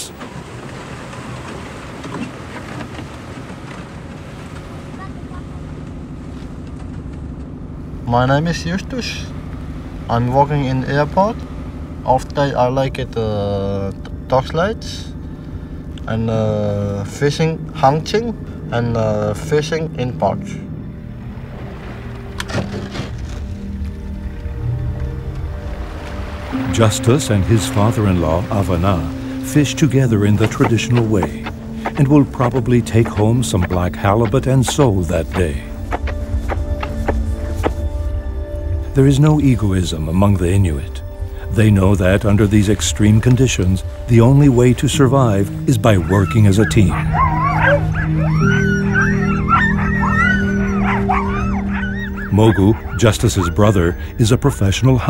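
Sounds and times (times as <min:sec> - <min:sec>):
outboard motor running: 0:00.0 - 0:55.0
background music with low notes: 0:03.6 - 0:55.0
dogs yelping and howling: 0:45.8 - 0:54.2.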